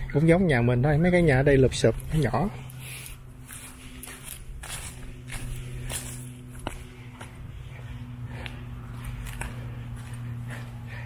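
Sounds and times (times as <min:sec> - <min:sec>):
faint low hum: 0:00.0 - 0:11.0
footsteps walking: 0:00.2 - 0:11.0.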